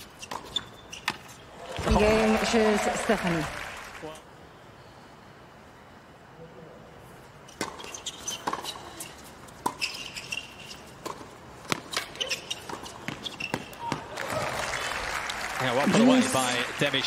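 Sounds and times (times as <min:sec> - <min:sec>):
shoe squeaks: 0:00.0 - 0:01.5, 0:07.4 - 0:14.0
crowd applauding: 0:01.6 - 0:04.2, 0:14.1 - 0:17.0
rackets striking tennis ball: 0:07.5 - 0:08.8.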